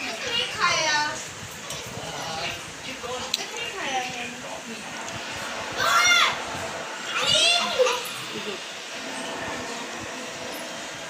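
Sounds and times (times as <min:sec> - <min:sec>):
room noise: 0:00.0 - 0:11.0
children shouting at play: 0:05.7 - 0:06.4, 0:07.1 - 0:08.3.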